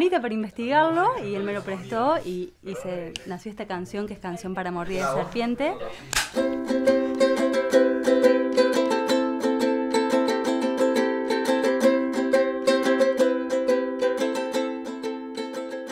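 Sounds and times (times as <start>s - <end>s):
ukulele strumming: 6.1s - 15.9s.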